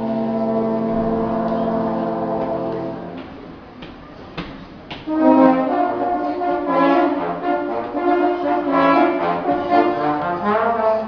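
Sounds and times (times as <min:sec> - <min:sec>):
brass ensemble sustained chord: 0:00.0 - 0:03.3, 0:05.0 - 0:11.0.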